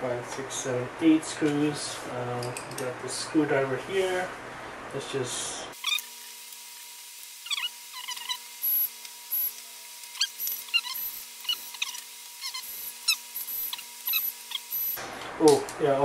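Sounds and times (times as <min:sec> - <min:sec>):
high-pitched whines: 0:07.2 - 0:15.0
screwdriver squeaks and clicks: 0:07.4 - 0:15.0.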